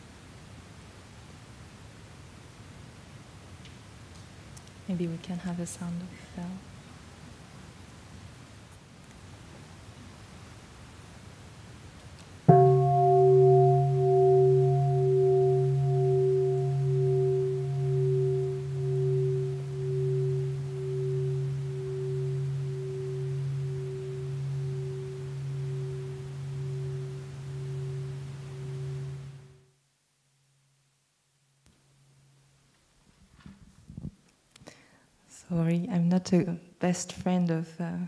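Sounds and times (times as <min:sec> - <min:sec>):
bowl bell ringing: 0:12.5 - 0:29.6.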